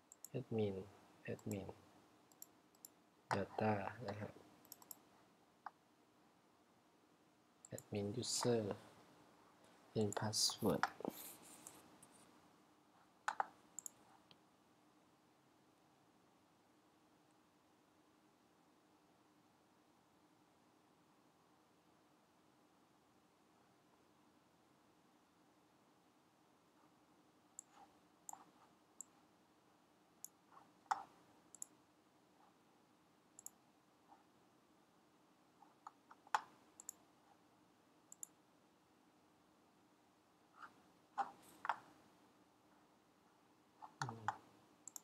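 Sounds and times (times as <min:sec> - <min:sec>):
faint steady hum: 0:00.0 - 0:45.0
computer clicks: 0:02.3 - 0:05.8, 0:07.6 - 0:08.6, 0:13.2 - 0:14.4, 0:30.2 - 0:31.8, 0:33.4 - 0:33.6, 0:35.6 - 0:37.0, 0:38.1 - 0:38.4, 0:41.2 - 0:41.9, 0:43.8 - 0:45.0.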